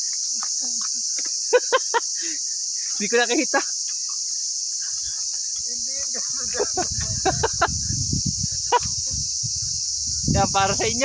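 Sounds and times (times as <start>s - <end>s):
insects chirping in grass: 0.0s - 11.0s
people laughing: 0.6s - 2.5s, 3.2s - 3.8s, 6.1s - 7.9s, 8.5s - 9.2s
wind rumble on microphone: 6.4s - 11.0s.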